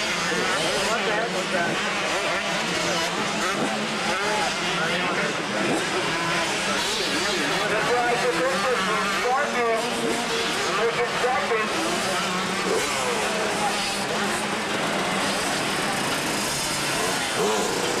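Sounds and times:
motocross bike engines revving: 0.0s - 18.0s.

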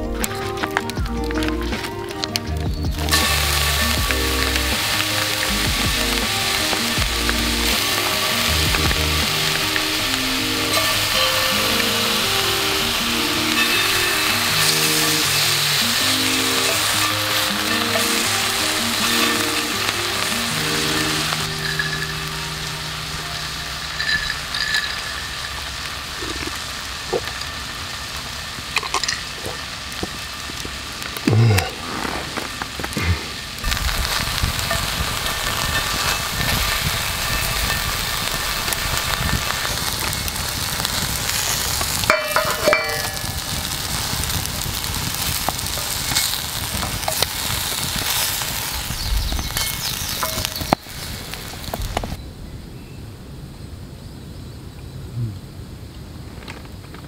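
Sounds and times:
meat sizzling in a frying pan: 2.1s - 31.2s, 33.4s - 52.2s
chopsticks tapping and scraping: 42.1s - 43.2s.

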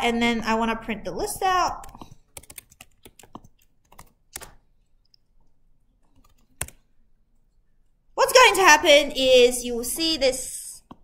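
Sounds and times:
computer keyboard typing: 1.8s - 4.6s, 6.0s - 6.9s.

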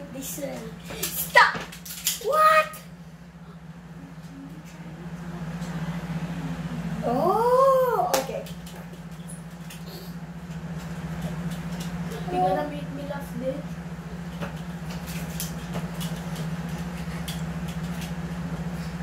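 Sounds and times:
low hum: 0.0s - 19.0s
child exclaiming: 2.2s - 2.9s.

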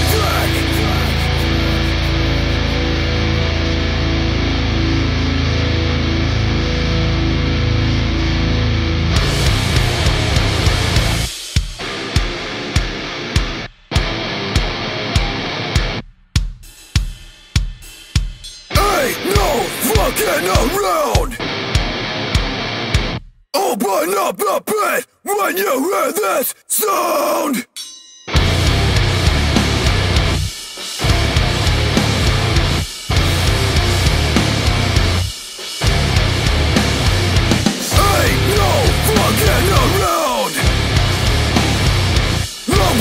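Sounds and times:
hardcore punk band playing: 0.0s - 16.6s, 18.3s - 24.6s, 28.3s - 43.0s
pounding drums: 15.2s - 23.2s, 28.3s - 43.0s.

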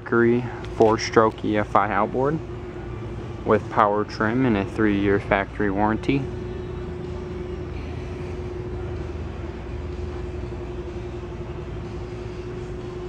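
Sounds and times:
constant humming tone: 0.0s - 13.0s
ventilation noise: 0.0s - 13.0s.

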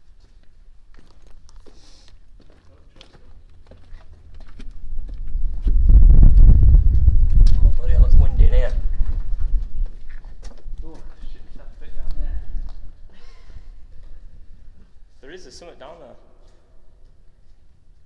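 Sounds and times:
footsteps crunching on gravel: 0.2s - 5.8s
loud low rumble: 4.8s - 10.1s.

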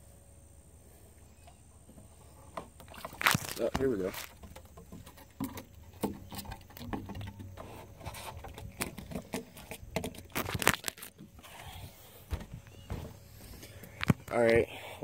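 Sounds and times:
handling noise: 1.9s - 14.5s.

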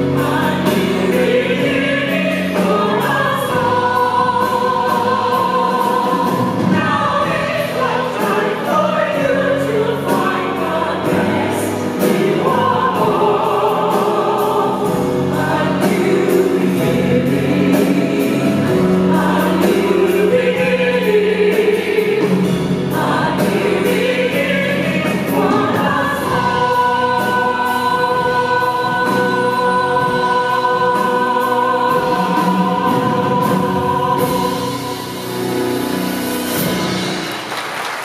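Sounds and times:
choir and soloists singing: 0.0s - 37.2s
instrumental accompaniment: 0.0s - 38.0s.

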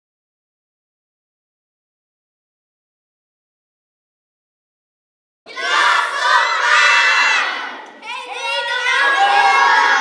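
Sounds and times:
children shouting and cheering: 5.5s - 10.0s.

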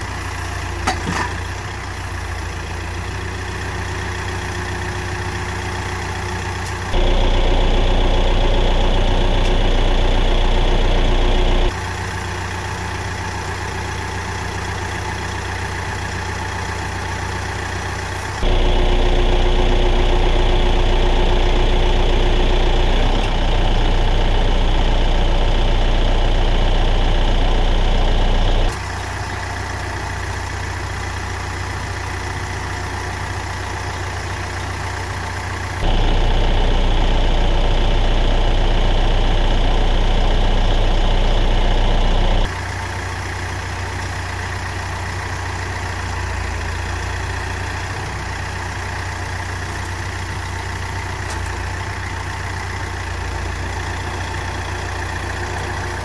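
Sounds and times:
tractor diesel engine running: 0.0s - 56.0s.

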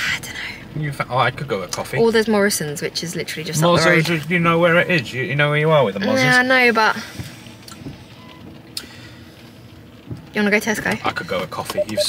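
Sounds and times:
car cabin hum: 10.0s - 12.0s.

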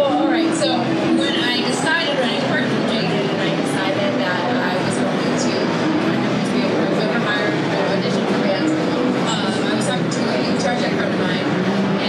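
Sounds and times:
crowd din: 0.0s - 12.0s
woman talking into microphone: 0.0s - 12.0s.

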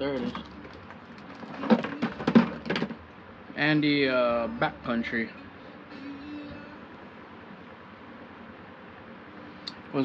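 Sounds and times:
plastic spool knocks and rustles: 0.2s - 3.0s.

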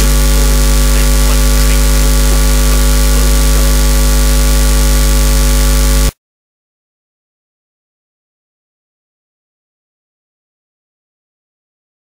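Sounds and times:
electrical hum and hiss: 0.0s - 6.1s.

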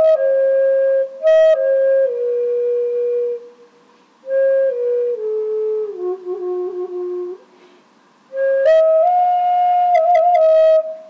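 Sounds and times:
slow flute note: 0.0s - 7.5s, 8.3s - 11.0s.

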